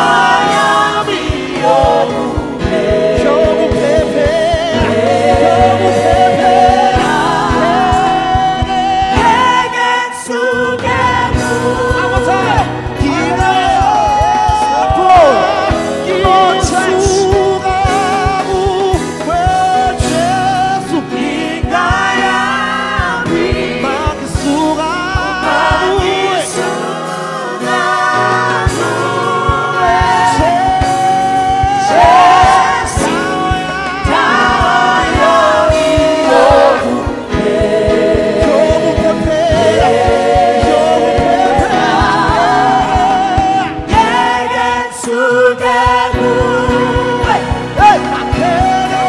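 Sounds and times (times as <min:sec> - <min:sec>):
band accompaniment with beat: 0:00.0 - 0:49.0
group singing gospel song: 0:00.0 - 0:49.0.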